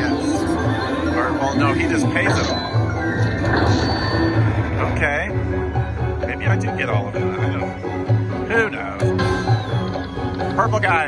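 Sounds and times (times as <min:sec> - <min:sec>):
electronic sound effects: 0:00.0 - 0:05.4
slot machine music: 0:00.0 - 0:11.0.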